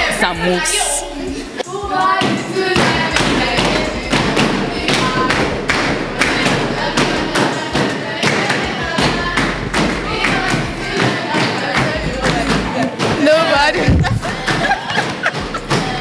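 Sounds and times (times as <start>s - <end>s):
voices calling along: 0.0s - 16.0s.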